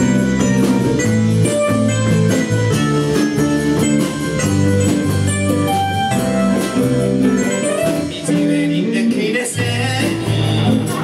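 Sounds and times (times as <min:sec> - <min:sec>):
live band playing pop: 0:00.0 - 0:11.0.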